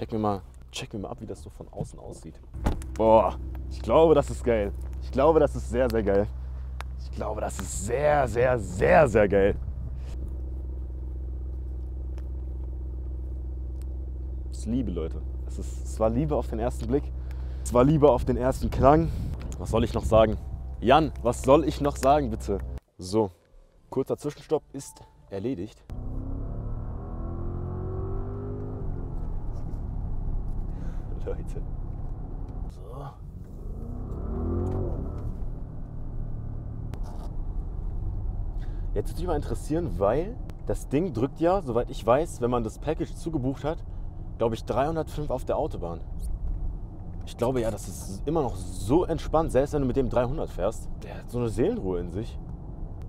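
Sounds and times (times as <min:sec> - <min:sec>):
car engine idling: 0:02.2 - 0:22.8, 0:28.4 - 0:53.0.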